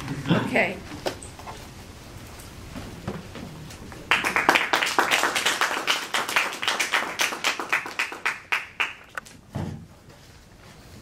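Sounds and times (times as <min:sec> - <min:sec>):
audience applauding: 0:04.0 - 0:09.2.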